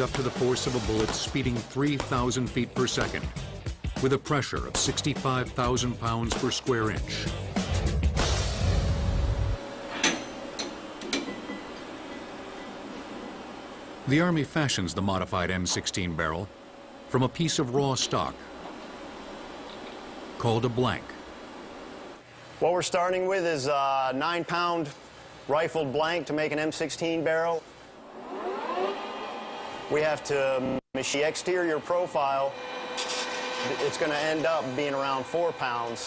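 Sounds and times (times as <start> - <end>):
machine motor whine: 28.0 - 36.0.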